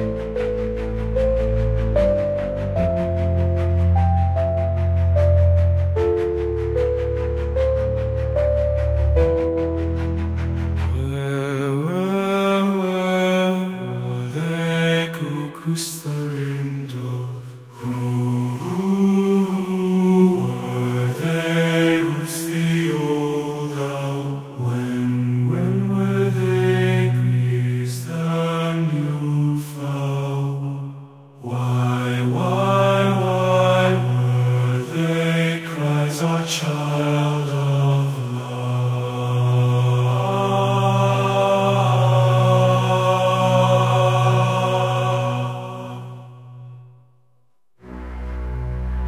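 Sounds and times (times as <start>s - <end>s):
wordless chant-like singing: 0.0s - 3.1s, 10.8s - 46.9s
steady low drone: 0.0s - 13.0s, 31.4s - 46.6s, 47.8s - 49.0s
synthetic singing voice: 10.9s - 30.5s.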